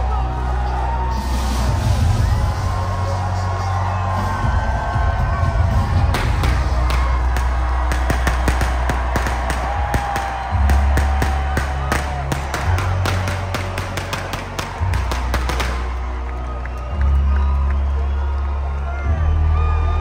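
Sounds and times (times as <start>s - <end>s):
crowd cheering: 0.0s - 20.0s
live concert music: 0.0s - 20.0s
sharp claps: 6.1s - 17.8s.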